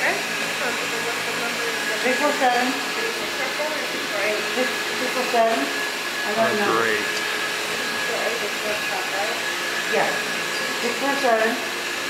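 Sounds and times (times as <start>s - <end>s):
electric motor whirring: 0.6s - 11.5s
person talking: 6.3s - 7.3s.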